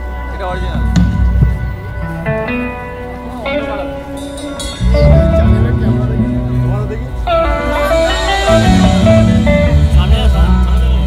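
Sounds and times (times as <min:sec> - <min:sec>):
bass and low chords: 0:00.0 - 0:11.0
guitar melody with bending notes: 0:00.0 - 0:11.0.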